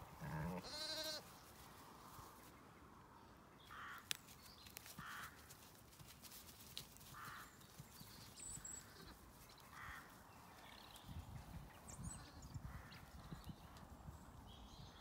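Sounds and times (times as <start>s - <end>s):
distant crow caws: 3.7s - 4.2s, 5.0s - 5.5s, 7.1s - 7.5s, 9.7s - 10.2s.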